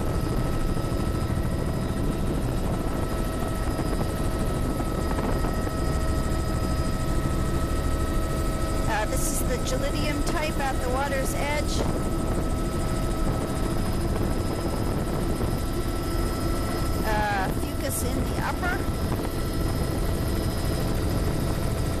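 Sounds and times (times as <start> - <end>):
helicopter engine and rotor drone: 0.0 - 22.0
person speaking: 8.9 - 11.8, 17.1 - 18.8.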